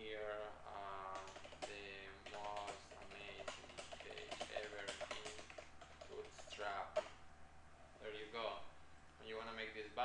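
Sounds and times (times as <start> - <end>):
man talking: 0.0 - 7.1, 8.0 - 10.0
keyboard typing: 0.9 - 7.2.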